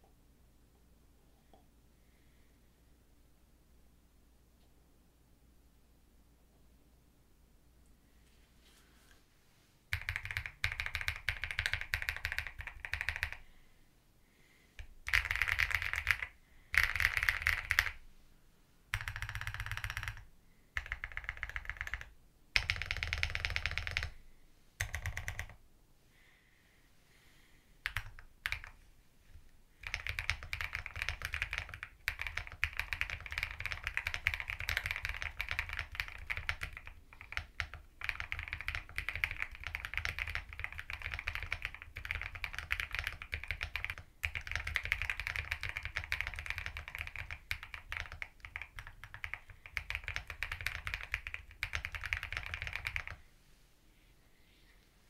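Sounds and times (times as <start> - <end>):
mechanical keyboard typing: 9.9 - 13.4, 14.8 - 18.0, 18.9 - 24.2, 24.8 - 25.6, 27.8 - 28.8, 29.8 - 53.2.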